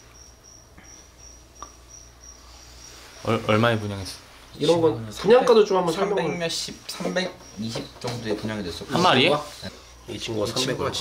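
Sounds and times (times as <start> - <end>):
cricket chirping: 0.0 - 3.9, 4.6 - 9.2
faint low hum: 0.0 - 11.0.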